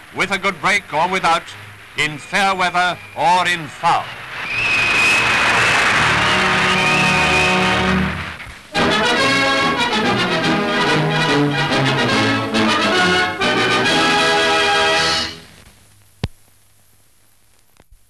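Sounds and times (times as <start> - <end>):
brass-led orchestral music: 5.3 - 15.5.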